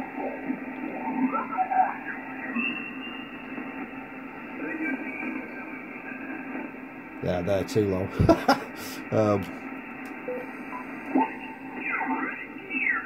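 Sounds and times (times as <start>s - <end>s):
radio static hiss: 0.0s - 13.0s
garbled radio voices: 7.2s - 9.6s.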